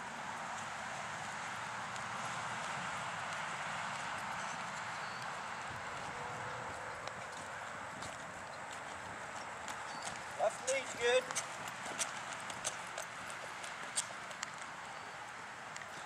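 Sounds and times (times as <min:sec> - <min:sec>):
steady background noise: 0:00.0 - 0:16.0
horse hoofbeats on sand: 0:00.6 - 0:15.1
man's voice: 0:10.4 - 0:11.3.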